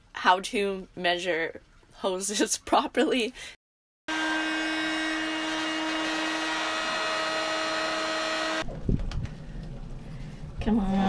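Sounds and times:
heat gun fan humming: 0:04.1 - 0:08.6.

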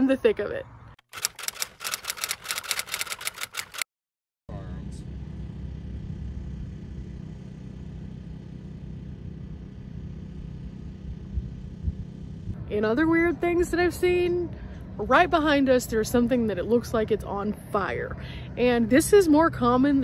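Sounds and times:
typewriter key clicks: 0:01.1 - 0:03.8
low outdoor rumble: 0:04.5 - 0:20.0.

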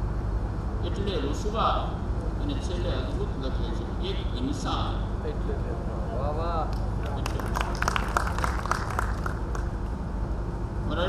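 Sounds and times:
low sound system hum: 0:00.0 - 0:11.0
audience applause: 0:07.0 - 0:09.8.

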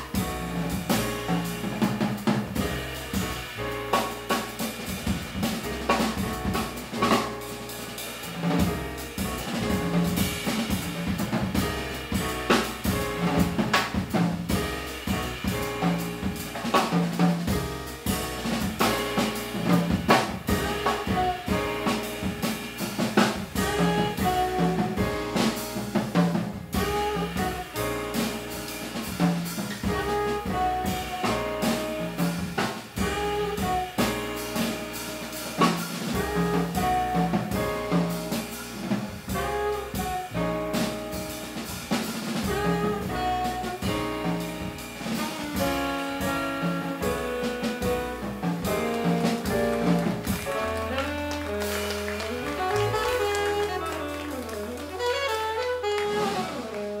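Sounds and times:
drum kit: 0:00.0 - 0:57.0
piano: 0:00.0 - 0:57.0
upright bass: 0:00.0 - 0:57.0
saxophone melody: 0:17.6 - 0:25.8, 0:26.7 - 0:28.8, 0:29.8 - 0:41.8, 0:42.4 - 0:57.0.

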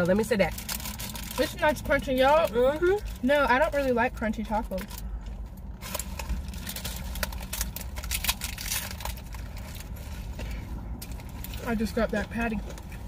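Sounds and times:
paper wrappers crinkling: 0:00.0 - 0:03.8, 0:04.7 - 0:12.9
taco shells crunching: 0:00.0 - 0:03.8, 0:04.5 - 0:13.0
low rumble inside car: 0:00.0 - 0:13.0.

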